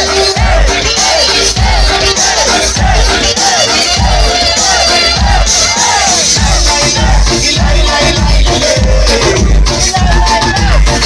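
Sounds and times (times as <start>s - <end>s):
crowd shouting and singing along: 0.0s - 11.0s
loud dance music with bass beat: 0.0s - 11.0s.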